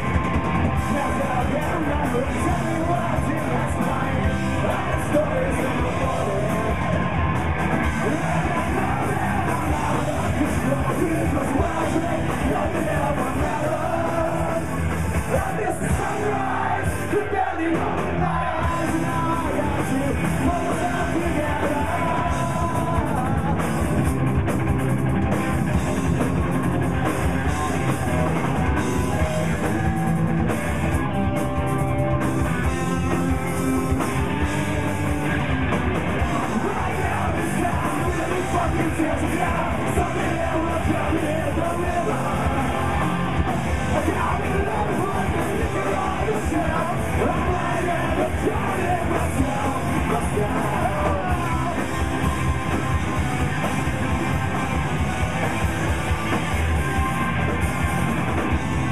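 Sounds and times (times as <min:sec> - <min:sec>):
distorted electric guitars: 0:00.0 - 0:58.9
drum kit: 0:00.0 - 0:58.9
electric bass: 0:00.0 - 0:58.9
shouted lead vocals: 0:00.0 - 0:58.9.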